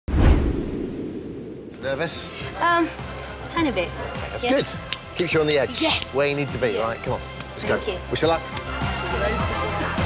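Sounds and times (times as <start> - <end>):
whoosh with deep hit: 0.1 - 1.9.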